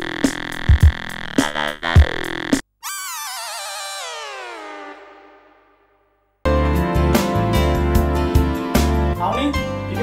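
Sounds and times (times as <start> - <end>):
electronic music with a beat: 0.0 - 2.6.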